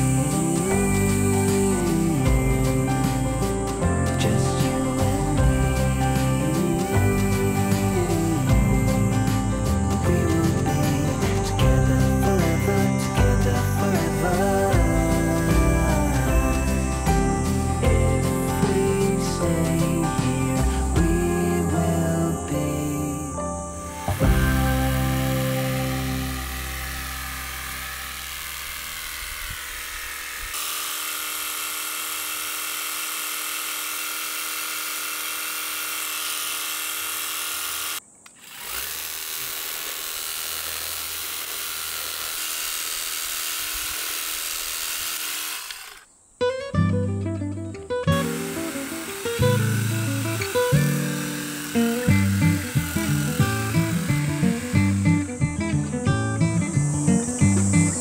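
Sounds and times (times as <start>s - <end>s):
plucked acoustic guitar music: 0.0s - 26.9s, 46.4s - 58.0s
soft background music: 0.0s - 27.9s
garden hose nozzle spraying water: 23.9s - 46.1s, 48.1s - 58.0s.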